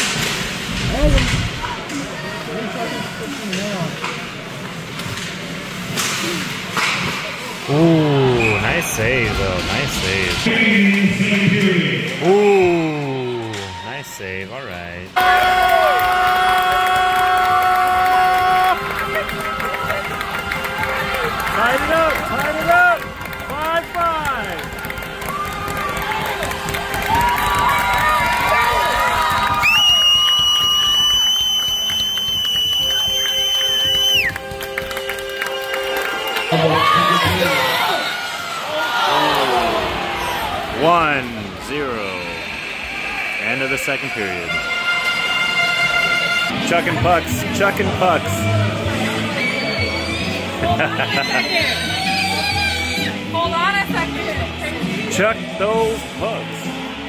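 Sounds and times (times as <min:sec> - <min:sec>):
crowd cheering and chatter: 0:00.0 - 0:57.0
music over arena speakers: 0:08.4 - 0:12.5, 0:44.0 - 0:57.0
arena horn: 0:43.2 - 0:47.2.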